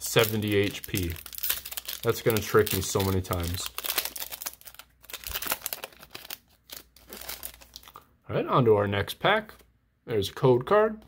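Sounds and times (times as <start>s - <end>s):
foil wrapper crinkling: 0.0s - 8.0s.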